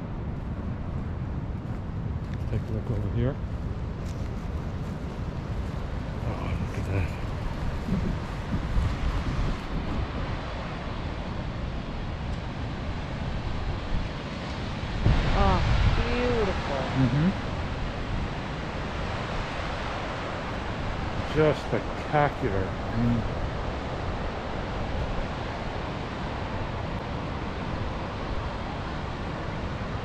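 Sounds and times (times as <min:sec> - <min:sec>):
wind noise on microphone: 0:03.4 - 0:21.4
ocean surf breaking: 0:04.7 - 0:30.0.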